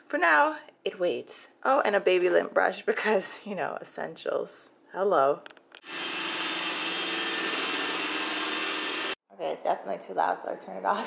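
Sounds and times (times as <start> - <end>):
robot vacuum cleaner whirring: 5.8 - 9.2.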